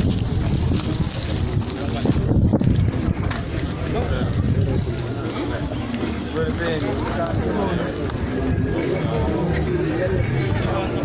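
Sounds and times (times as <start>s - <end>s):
wind buffeting microphone: 0.0s - 5.3s
indistinct voices: 0.0s - 11.0s.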